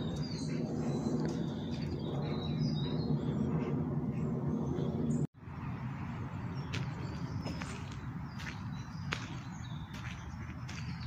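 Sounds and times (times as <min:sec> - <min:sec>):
footsteps on gravel: 0:06.6 - 0:11.0.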